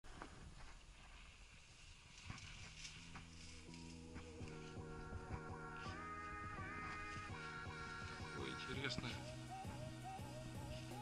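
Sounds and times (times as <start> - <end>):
footsteps crunching in snow: 0.1 - 9.4
background music held notes: 2.8 - 11.0.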